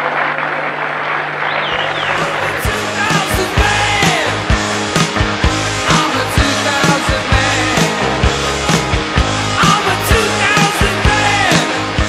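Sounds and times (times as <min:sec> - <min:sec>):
crowd applauding: 0:00.0 - 0:04.5.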